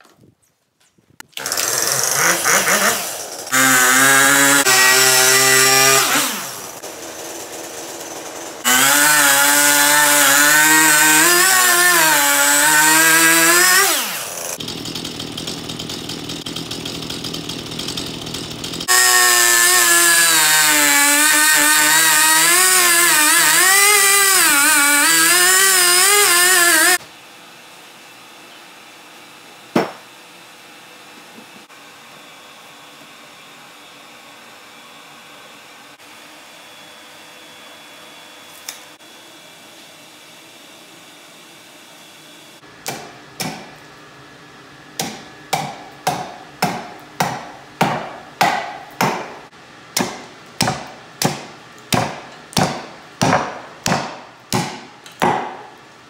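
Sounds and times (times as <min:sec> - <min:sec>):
chainsaw revving and cutting log: 0:01.4 - 0:27.0.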